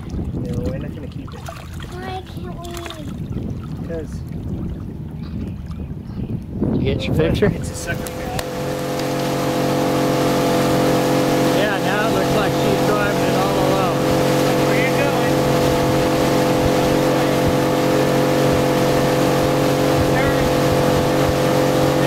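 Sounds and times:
water rushing: 0.0 - 5.5, 6.8 - 22.0
outboard motor running: 0.0 - 22.0
wind: 0.0 - 22.0.

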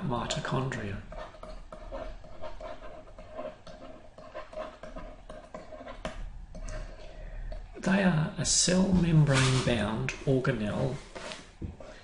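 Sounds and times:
stylus strokes on drawing tablet: 0.0 - 7.7, 8.7 - 12.0.

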